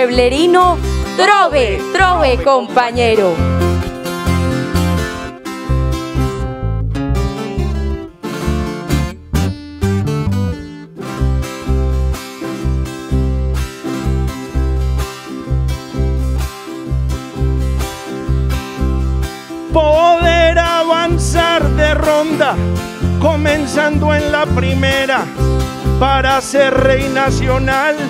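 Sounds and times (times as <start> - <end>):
electric bass line: 0.0 - 28.0
strummed acoustic guitar: 0.0 - 28.0.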